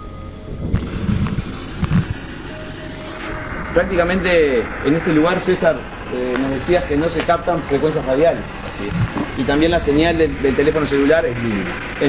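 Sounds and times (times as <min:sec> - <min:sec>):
low static bursts: 0:00.0 - 0:12.0
radio static sweeping: 0:00.0 - 0:12.0.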